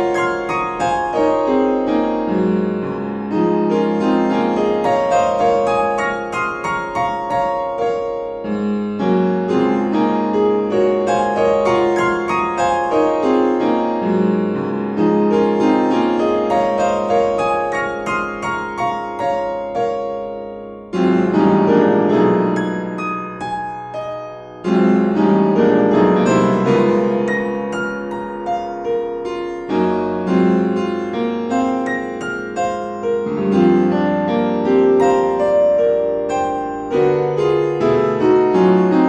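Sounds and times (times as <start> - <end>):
piano music: 0.0 - 39.0.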